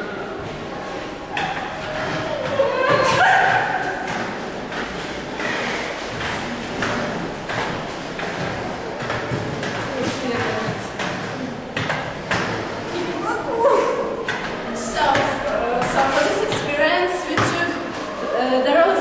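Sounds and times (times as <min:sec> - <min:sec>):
skate wheels rolling on hard floor: 0:00.4 - 0:13.6
skate wheels clicking and knocking: 0:01.3 - 0:13.0.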